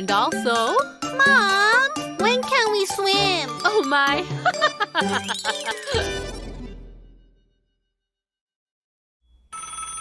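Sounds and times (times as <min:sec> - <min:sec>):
telephone ringing: 0:09.5 - 0:10.0.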